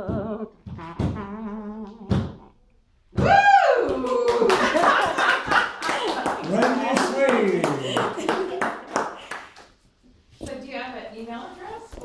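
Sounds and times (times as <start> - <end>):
loud whoop: 3.2 - 4.8
audience clapping: 3.9 - 9.8
audience laughing: 4.3 - 9.3.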